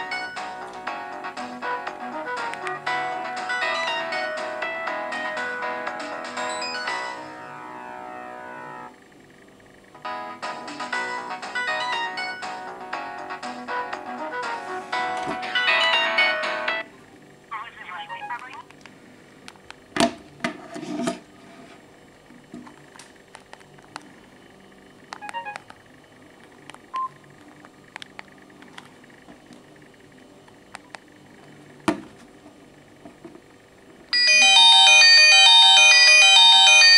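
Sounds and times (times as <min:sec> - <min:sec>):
mobile phone polyphonic ringtone: 0:06.3 - 0:08.9, 0:15.5 - 0:16.8, 0:17.6 - 0:18.6, 0:34.2 - 0:36.9
electronic key tones: 0:17.6 - 0:18.7, 0:25.2 - 0:25.7.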